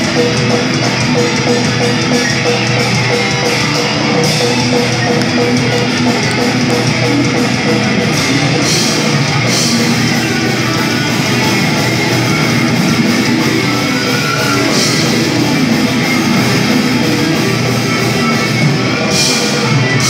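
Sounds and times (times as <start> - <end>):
heavy metal band playing live: 0.0 - 20.0.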